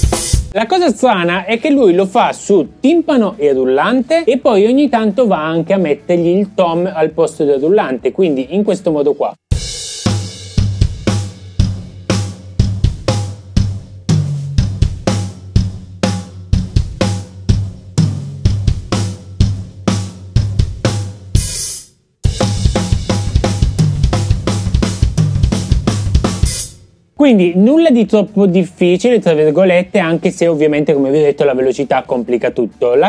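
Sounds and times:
drum kit playing punk groove: 0.0s - 0.6s, 9.5s - 26.8s
cymbal crash: 21.4s - 23.5s, 26.3s - 26.9s.

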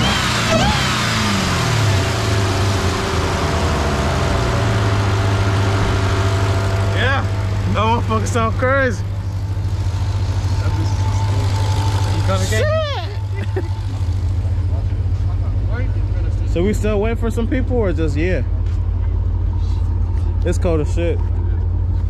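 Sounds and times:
car engine revving and idling: 0.0s - 22.0s
voices: 4.6s - 21.8s.

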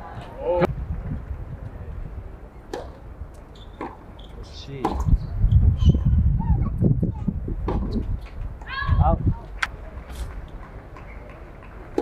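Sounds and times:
tennis ball knocks: 2.7s - 3.0s, 4.8s - 5.2s.

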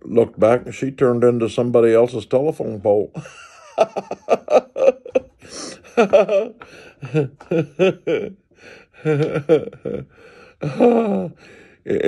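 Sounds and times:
man laughing: 3.1s - 12.0s
gasps of breath: 6.6s - 7.0s, 10.0s - 11.9s.

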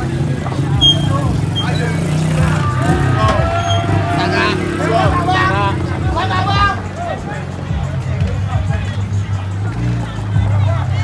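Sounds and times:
car and motorcycle engines running: 0.0s - 11.0s
people calling: 0.0s - 11.0s.

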